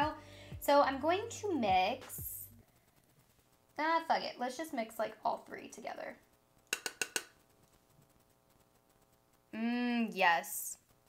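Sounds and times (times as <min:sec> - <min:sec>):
brush tapping plastic palette: 0:06.6 - 0:09.0.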